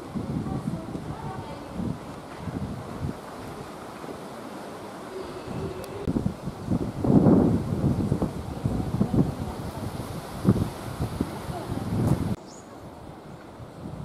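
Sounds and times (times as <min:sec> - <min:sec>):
wind blowing on microphone: 0:00.0 - 0:14.0.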